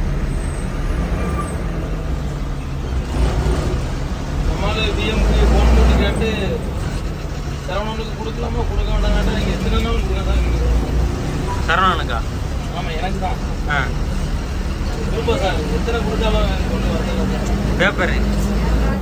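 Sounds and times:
bus diesel engine running: 0:00.0 - 0:19.0
voices talking: 0:02.0 - 0:19.0.

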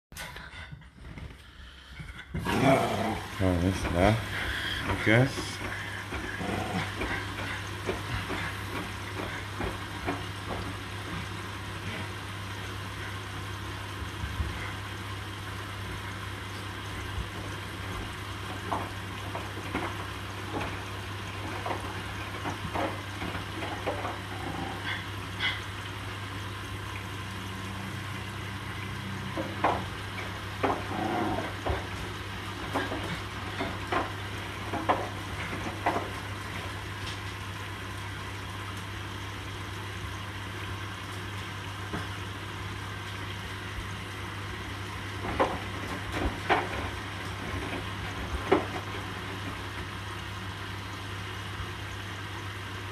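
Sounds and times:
low machine hum: 0:00.1 - 0:52.9
washing machine sloshing: 0:00.2 - 0:52.9.

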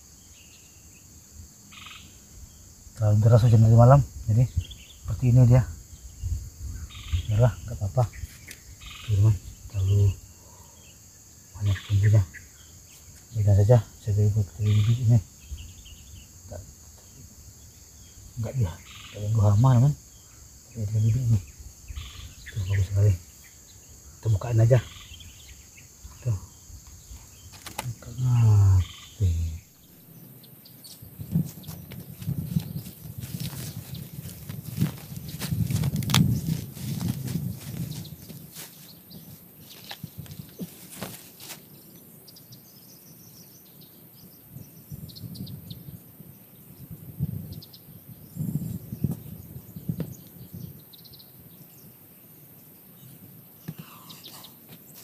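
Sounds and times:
faint birds chirping: 0:00.0 - 0:55.0
insects chirping: 0:00.0 - 0:55.0
hands rustling soil and leaves: 0:30.9 - 0:42.0.

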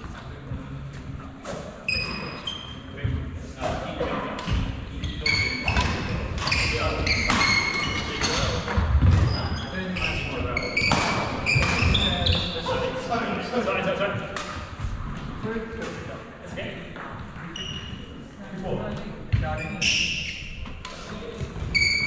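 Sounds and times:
shoes squeaking on wooden floor: 0:01.5 - 0:03.1, 0:05.0 - 0:12.9, 0:17.0 - 0:18.2, 0:19.3 - 0:22.0
rackets hitting shuttlecock: 0:05.6 - 0:09.3, 0:10.8 - 0:12.2.

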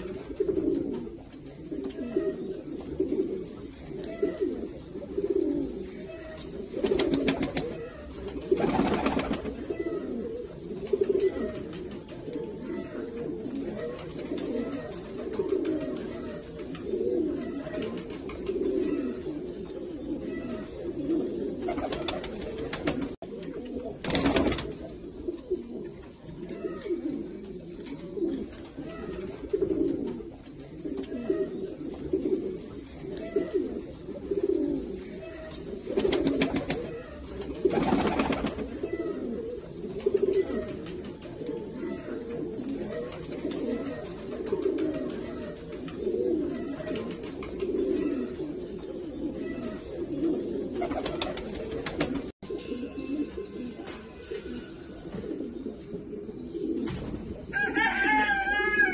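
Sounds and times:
pigeons cooing: 0:00.0 - 0:58.9.

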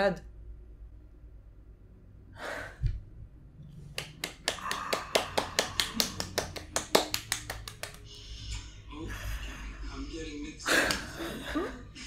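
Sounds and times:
person clapping hands quickly: 0:03.9 - 0:08.1.

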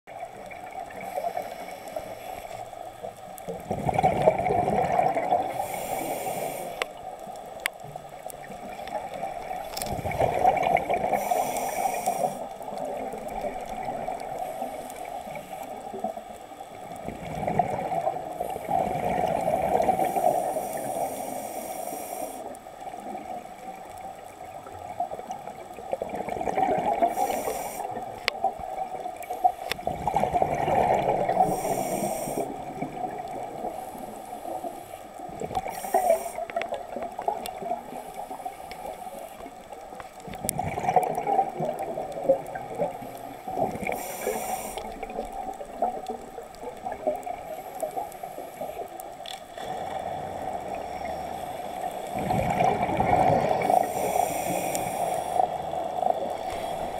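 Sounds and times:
muffled bubbling of exhaled air: 0:00.1 - 0:56.9.

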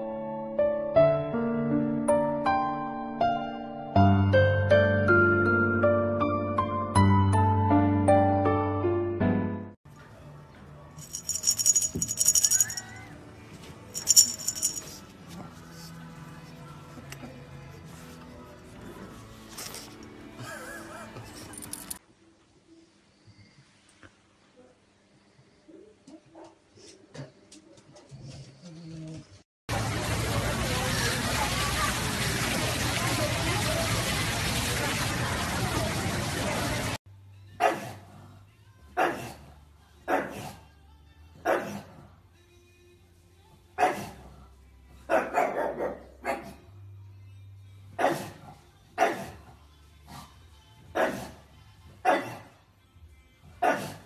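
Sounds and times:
water jets spraying through grate: 0:29.7 - 0:37.0
dog barking: 0:37.6 - 0:38.0, 0:39.0 - 0:39.4, 0:40.1 - 0:40.6, 0:41.4 - 0:42.0, 0:43.8 - 0:44.2, 0:45.1 - 0:46.6, 0:48.0 - 0:49.4, 0:51.0 - 0:51.4, 0:52.0 - 0:52.5, 0:53.6 - 0:54.0.

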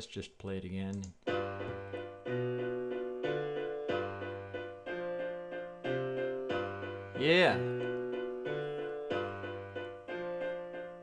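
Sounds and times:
piano chords over bass line: 0:01.3 - 0:11.0.

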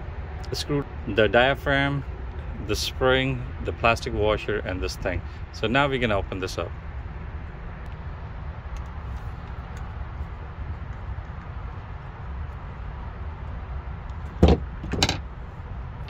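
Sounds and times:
low steady rumble: 0:00.0 - 0:16.0
metal parts knocking: 0:14.4 - 0:15.3.

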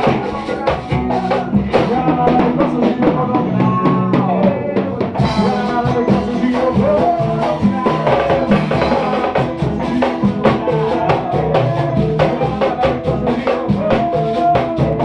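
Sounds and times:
drum kit with cymbals: 0:00.0 - 0:15.0
guitar: 0:00.0 - 0:15.0.

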